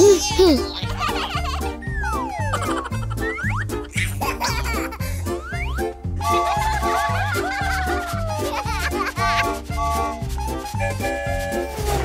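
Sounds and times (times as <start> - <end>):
upbeat children's music: 0.0 - 12.0.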